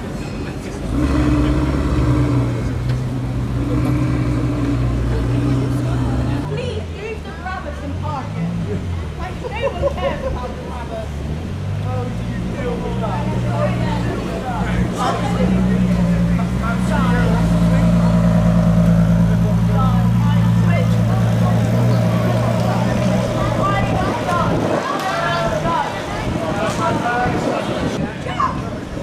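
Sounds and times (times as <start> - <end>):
people talking: 0.0 - 29.0
car engine idling: 0.7 - 9.6, 10.3 - 24.6.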